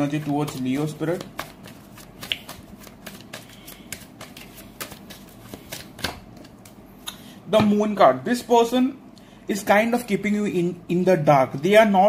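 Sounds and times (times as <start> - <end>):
cards being shuffled: 0.0 - 6.8.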